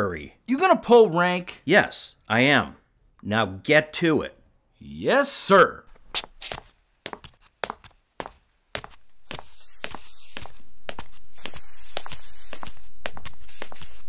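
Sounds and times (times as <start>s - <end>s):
spray paint can hissing: 8.9s - 14.0s.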